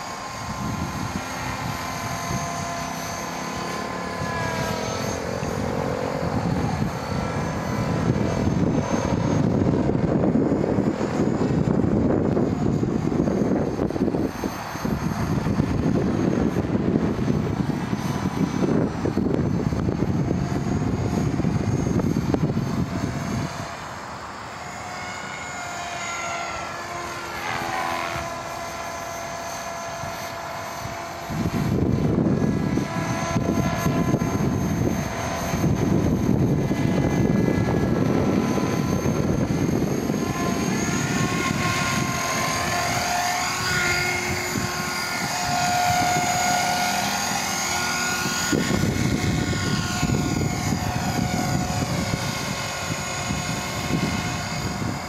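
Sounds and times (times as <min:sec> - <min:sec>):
electric motor and gear whine: 0:00.0 - 0:55.0
helicopter rotor noise: 0:00.0 - 0:55.0.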